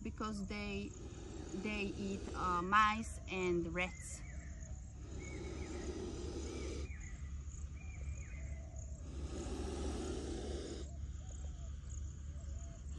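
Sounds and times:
snake hissing: 0.0s - 12.9s.

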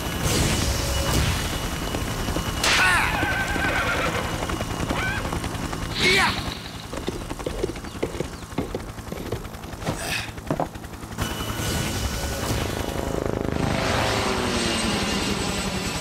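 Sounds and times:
hooves clopping: 6.8s - 10.8s.

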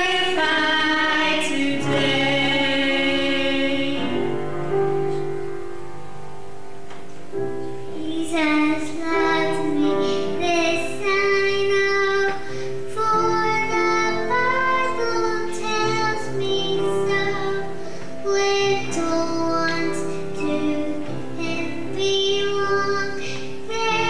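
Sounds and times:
boy singing into microphone: 7.9s - 24.0s.

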